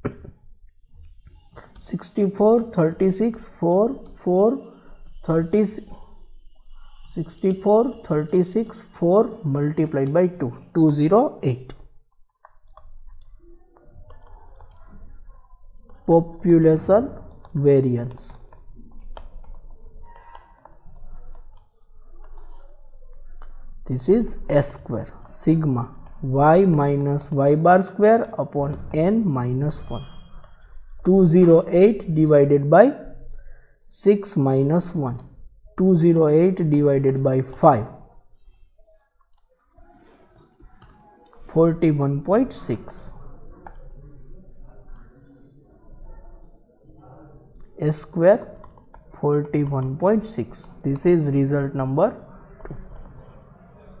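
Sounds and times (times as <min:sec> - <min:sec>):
faint low background noise: 0:00.0 - 0:54.0
person speaking: 0:01.6 - 0:06.1, 0:07.1 - 0:11.9, 0:16.1 - 0:21.5, 0:22.2 - 0:30.2, 0:31.0 - 0:33.2, 0:33.9 - 0:38.1, 0:39.9 - 0:44.0, 0:47.6 - 0:53.0
faint keyboard clicks: 0:48.4 - 0:49.9.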